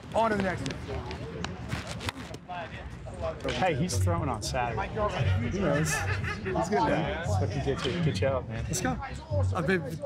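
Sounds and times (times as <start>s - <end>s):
indistinct talking: 0.0s - 10.0s.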